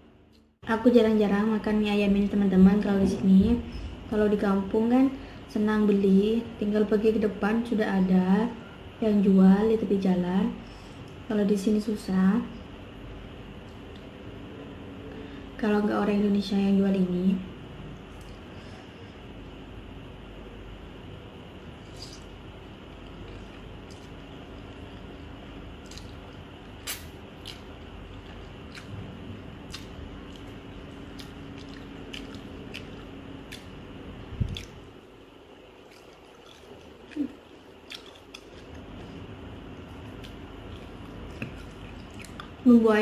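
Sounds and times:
low background hum: 0.0s - 43.0s
chewing and slurping: 29.6s - 33.7s, 35.8s - 39.2s, 39.8s - 42.6s.

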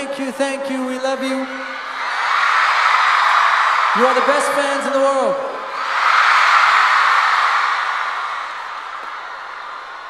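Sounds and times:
concert crowd cheering: 0.0s - 10.0s.

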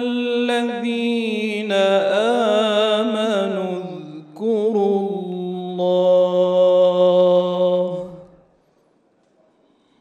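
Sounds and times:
man chanting melodic recitation: 0.0s - 8.4s.

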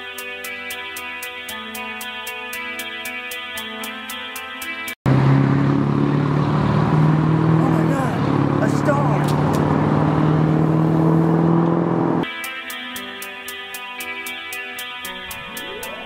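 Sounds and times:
guitar music: 0.0s - 16.0s
car engine running: 5.1s - 12.2s.

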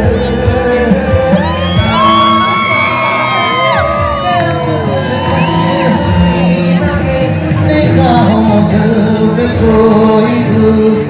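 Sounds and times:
live concert music: 0.0s - 11.0s
audience cheering and whooping: 0.8s - 7.4s.

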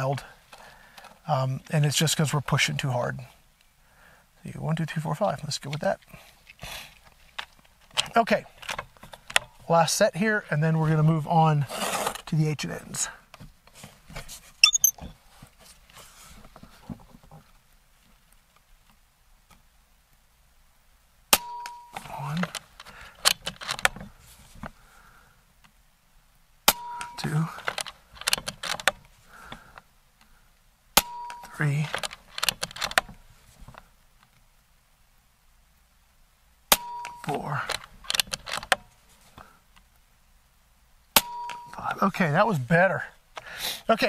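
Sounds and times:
man talking: 0.0s - 0.4s, 1.3s - 3.3s, 4.4s - 6.1s, 8.1s - 8.5s, 9.6s - 11.7s, 12.3s - 13.2s, 22.0s - 22.6s, 27.2s - 27.7s, 31.4s - 32.0s, 37.2s - 37.8s, 41.7s - 43.2s.

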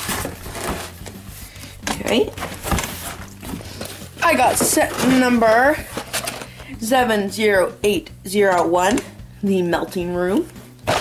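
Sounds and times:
cardboard box rustling and scraping: 0.0s - 6.5s.

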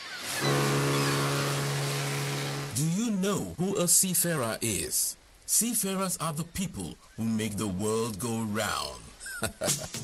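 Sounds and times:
rushing noise: 0.3s - 2.8s
low horn-like tone: 0.4s - 2.8s.

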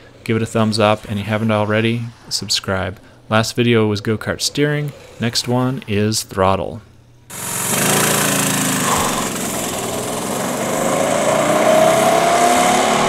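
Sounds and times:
go-kart engine running: 7.3s - 13.0s.

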